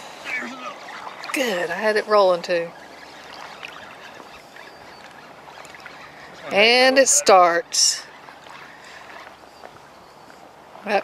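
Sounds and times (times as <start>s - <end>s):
small waves on water: 0.0s - 11.0s
wind: 0.0s - 11.0s.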